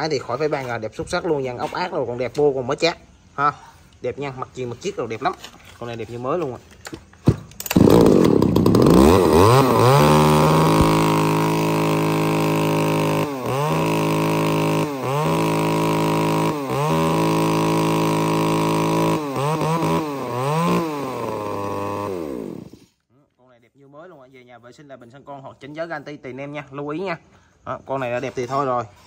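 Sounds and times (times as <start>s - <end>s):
chainsaw revving: 7.6s - 23.0s.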